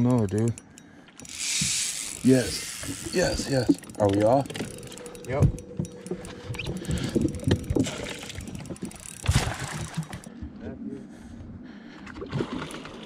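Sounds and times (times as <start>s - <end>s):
fishing gear knocks and clicks: 0.0s - 10.3s.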